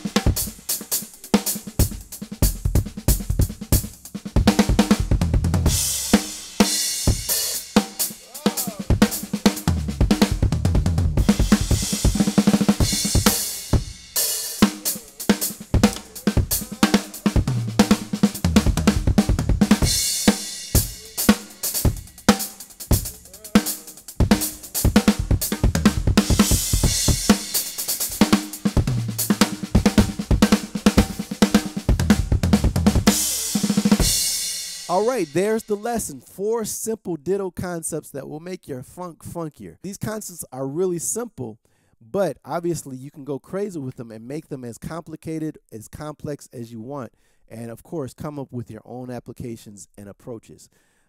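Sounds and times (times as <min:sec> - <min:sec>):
drum kit funk groove: 0:00.0 - 0:36.2
low tom notes: 0:01.9 - 0:06.0, 0:08.7 - 0:22.3, 0:22.9 - 0:27.4, 0:28.6 - 0:34.2.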